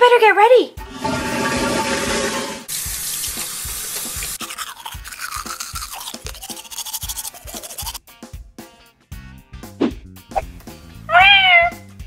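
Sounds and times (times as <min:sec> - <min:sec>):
running water: 0:02.7 - 0:04.4
toothbrush scrubbing: 0:02.7 - 0:08.0.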